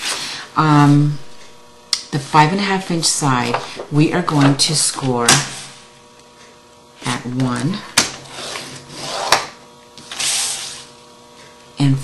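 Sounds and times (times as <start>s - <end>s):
scoring tool scratching paper: 8.3s - 9.4s, 10.0s - 10.9s.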